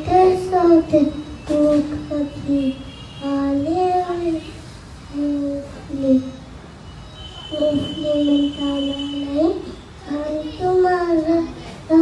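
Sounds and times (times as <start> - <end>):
boy singing into microphone: 0.0 - 6.4, 7.5 - 12.0.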